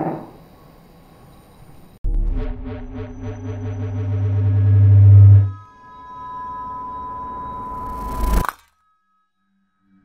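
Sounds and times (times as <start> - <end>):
deep synthesized drone: 2.0 - 8.5
high-pitched electronic tone: 2.1 - 8.6.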